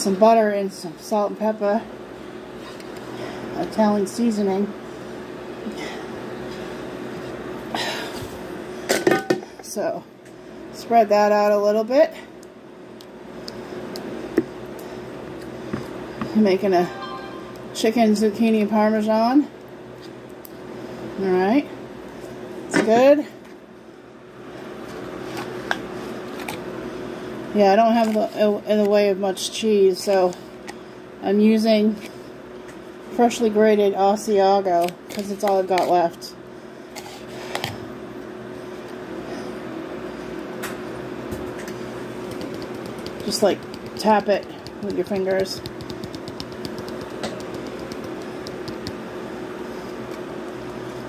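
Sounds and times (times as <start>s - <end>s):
steady low hum: 0.0s - 51.0s
low hum: 16.2s - 18.4s
fingertip taps on cheese container: 45.4s - 49.0s.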